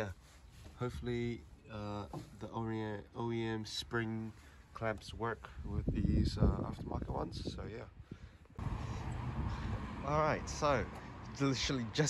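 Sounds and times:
outdoor background hiss: 0.0s - 7.0s, 7.6s - 12.0s.

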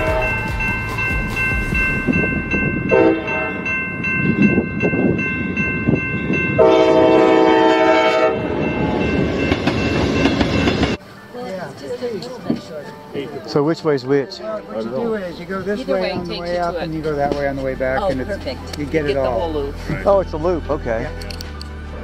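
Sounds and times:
train horn blasts: 0.0s - 0.7s, 2.9s - 3.7s, 6.6s - 8.7s
train rumbling: 0.0s - 20.9s
faint voices: 11.0s - 20.4s.

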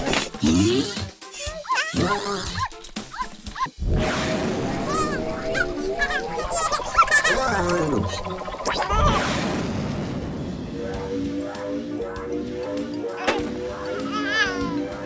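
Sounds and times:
cartoon music: 4.5s - 9.4s.

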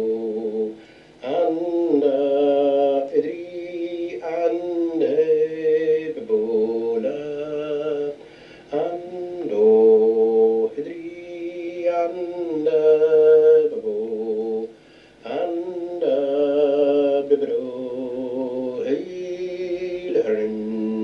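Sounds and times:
man singing vocables: 0.0s - 21.0s.

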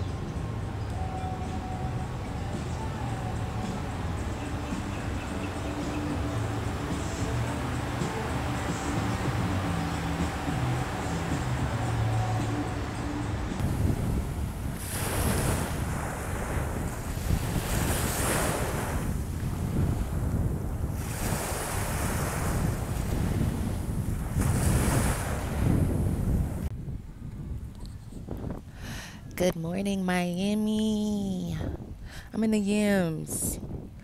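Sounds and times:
wind buffeting microphone: 0.0s - 34.0s
waves washing onto shore: 0.6s - 26.7s.

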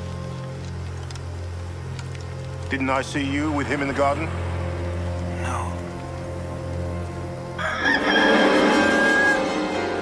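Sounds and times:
low music score: 0.0s - 10.0s
rooster crowing: 7.6s - 9.7s.

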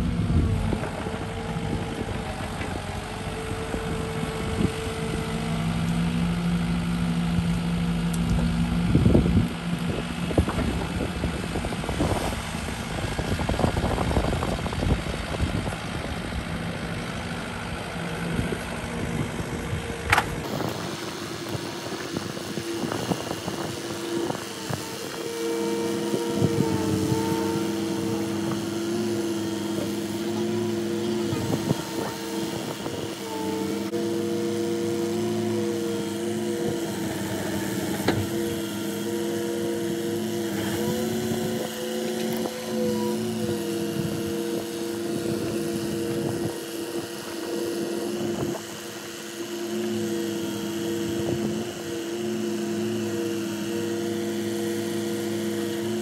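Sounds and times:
excavator engine and hydraulics: 0.0s - 56.0s.

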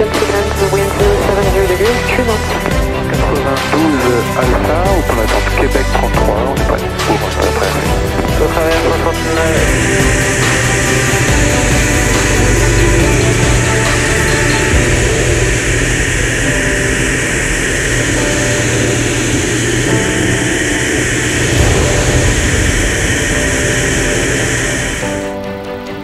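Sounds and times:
propeller engine running: 0.0s - 26.0s
wind rushing: 6.6s - 26.0s.

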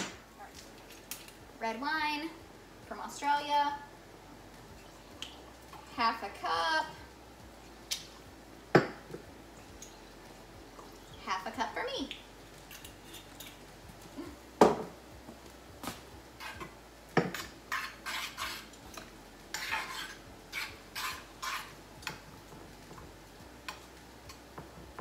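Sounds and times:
spoon scraping a casserole dish: 16.4s - 22.2s.

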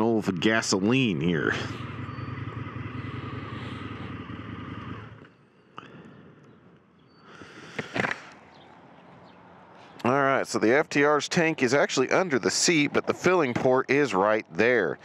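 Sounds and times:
motorcycle engine idling: 0.1s - 7.1s.

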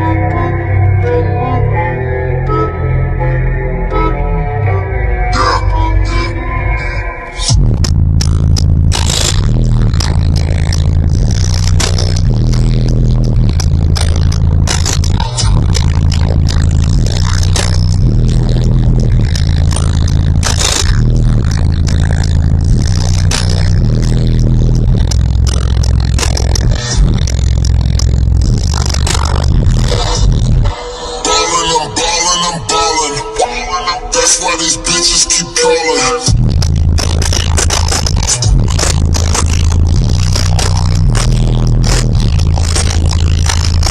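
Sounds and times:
bass-heavy music through car stereo: 0.0s - 43.9s.

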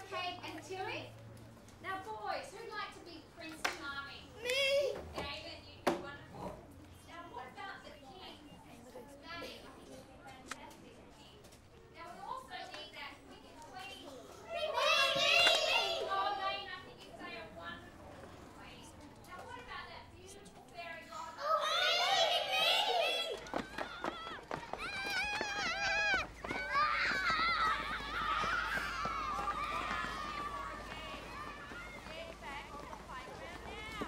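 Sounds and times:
classroom chatter: 12.2s - 34.0s
young children calling out: 14.5s - 16.4s, 21.3s - 32.1s.

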